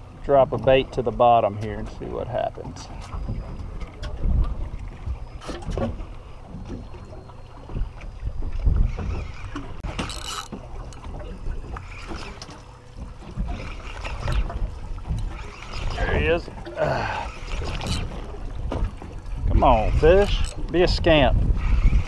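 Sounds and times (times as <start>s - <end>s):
boat and water noise: 0.0s - 22.0s
wind buffeting microphone: 0.0s - 22.0s.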